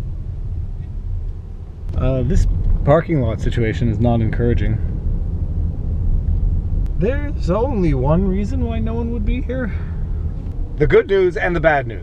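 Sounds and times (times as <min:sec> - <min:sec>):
car driving low rumble: 0:00.0 - 0:12.0.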